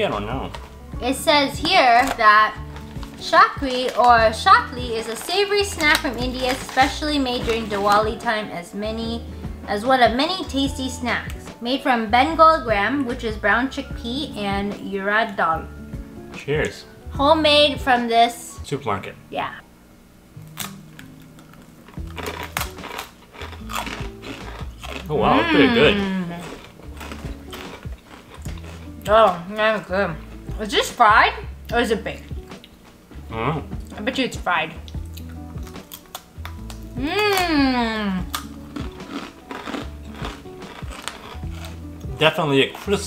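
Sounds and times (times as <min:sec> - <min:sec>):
background music: 0:00.0 - 0:43.0
crunchy snack being chewed: 0:20.4 - 0:25.1, 0:26.4 - 0:29.1, 0:34.8 - 0:37.5, 0:38.2 - 0:42.1.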